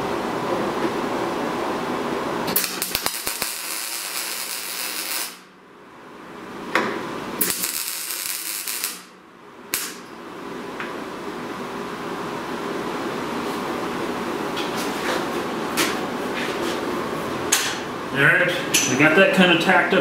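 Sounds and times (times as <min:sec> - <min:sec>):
welder arc crackle: 0:02.4 - 0:05.6, 0:07.4 - 0:10.1.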